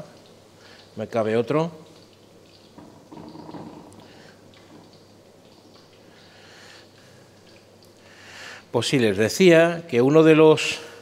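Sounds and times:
small crackles of oil: 0.0 - 8.7.

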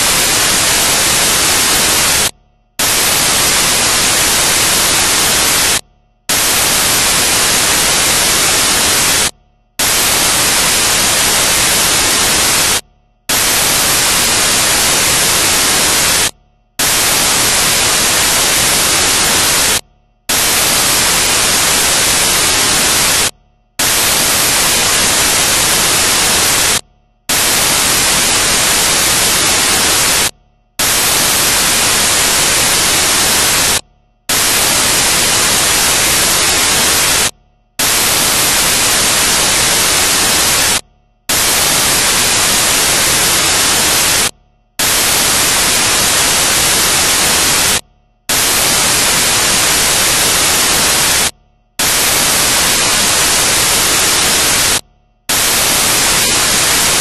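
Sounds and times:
static hiss: 0.0 - 57.0.

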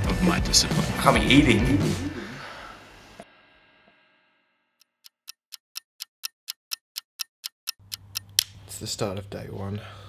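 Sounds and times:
fast clock-like ticking: 4.9 - 8.3.

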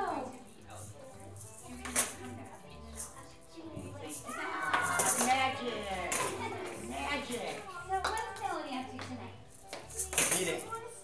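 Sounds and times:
plastic toys knocking plastic bowls: 4.7 - 5.4.

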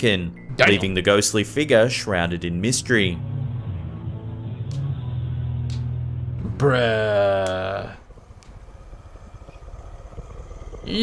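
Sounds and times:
faint low rumbling: 0.0 - 11.0.

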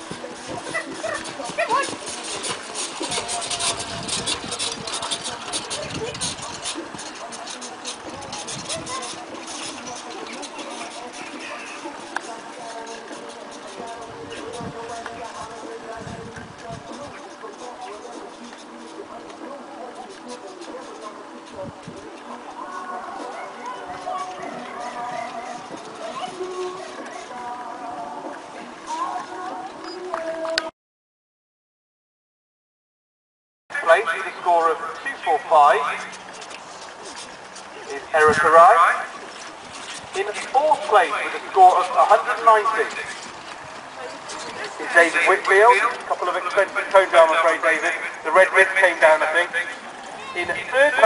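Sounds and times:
carriage rattling: 0.0 - 30.5, 34.6 - 51.0
pony hoofbeats on sand: 0.0 - 30.5
faint music: 0.0 - 30.7, 33.7 - 51.0
faint voices: 0.0 - 30.7, 33.7 - 51.0
indistinct talking: 0.0 - 30.7, 33.7 - 51.0.

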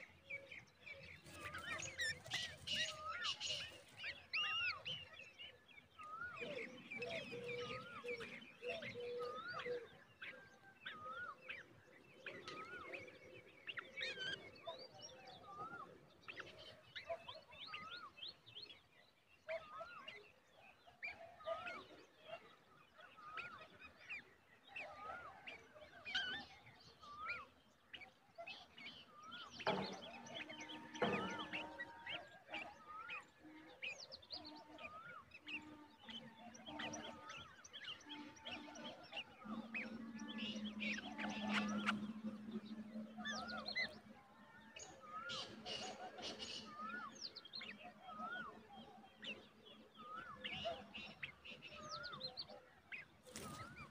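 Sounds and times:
birds chirping and calling: 0.0 - 53.9.

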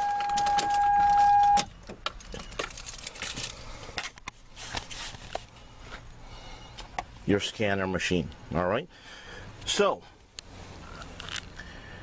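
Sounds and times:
car warning tone: 0.0 - 1.7
car keys jangling and clicking: 0.0 - 3.7.

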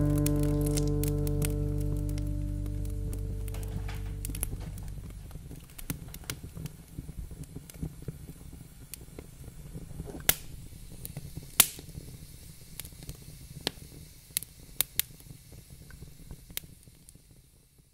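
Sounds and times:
low steady rumble: 0.0 - 7.3
sharp pops and crackles: 0.0 - 17.6.

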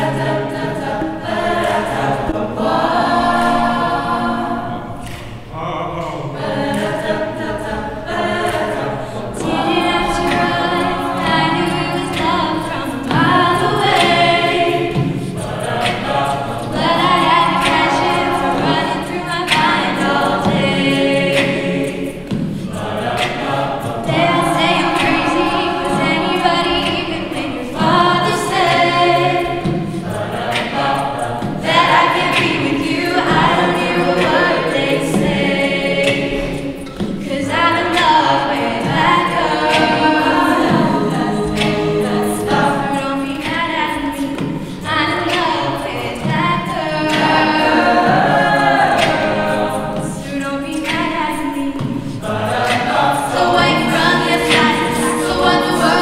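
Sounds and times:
sung backing harmonies: 0.0 - 56.0
woman singing lead: 6.3 - 56.0.

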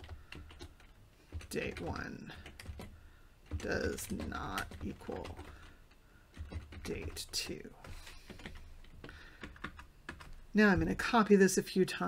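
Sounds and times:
computer keyboard typing: 0.0 - 10.4.

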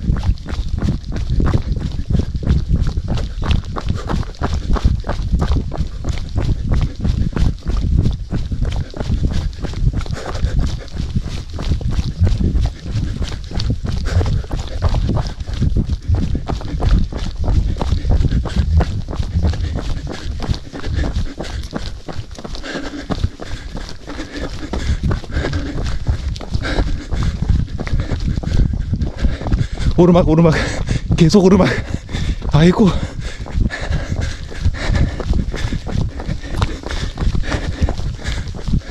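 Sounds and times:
runner breathing hard: 0.0 - 38.9.

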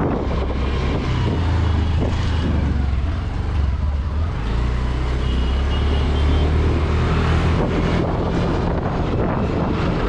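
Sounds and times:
wind noise on microphone: 0.0 - 3.3, 6.6 - 10.0.

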